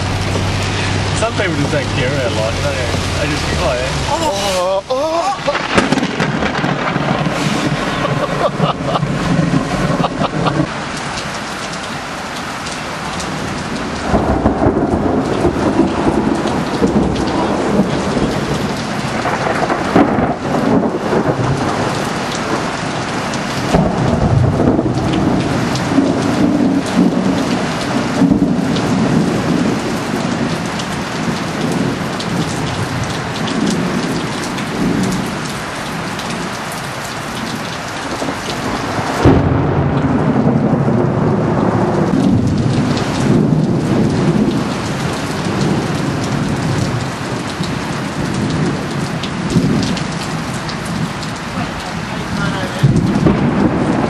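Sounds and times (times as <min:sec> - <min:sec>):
rolling thunder: 0:00.0 - 0:04.2, 0:05.3 - 0:11.1, 0:13.2 - 0:36.5, 0:37.4 - 0:54.0
heavy rain pouring: 0:00.0 - 0:54.0
loud thunder crack: 0:05.3 - 0:10.8, 0:13.9 - 0:22.7, 0:23.6 - 0:30.6, 0:38.0 - 0:47.4, 0:52.3 - 0:54.0.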